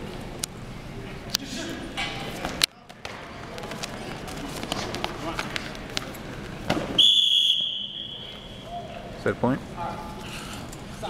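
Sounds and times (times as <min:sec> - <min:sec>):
crowd chatter: 0:00.0 - 0:07.0
referee whistle blast: 0:07.0 - 0:08.7.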